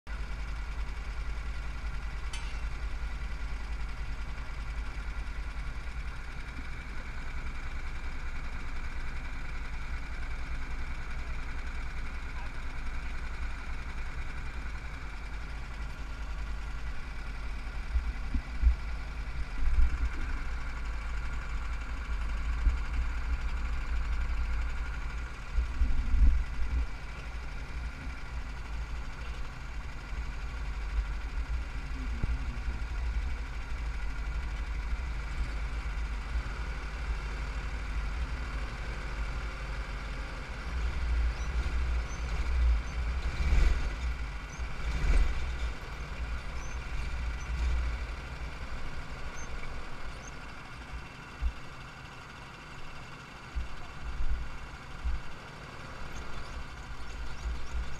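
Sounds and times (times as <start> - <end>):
go-kart engines running: 0.1 - 57.9
wind and vibration rumble: 0.1 - 57.9.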